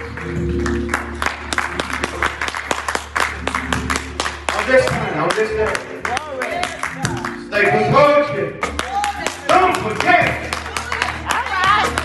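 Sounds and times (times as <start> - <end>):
congregation clapping: 0.0 - 7.9, 8.6 - 12.0
man speaking over loudspeakers: 4.5 - 12.0.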